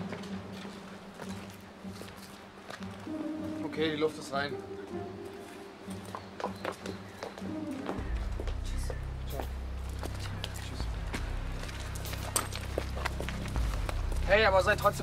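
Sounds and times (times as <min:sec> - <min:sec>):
footsteps on staircase: 0:00.0 - 0:03.6, 0:04.8 - 0:14.3
faint background music: 0:00.0 - 0:15.0.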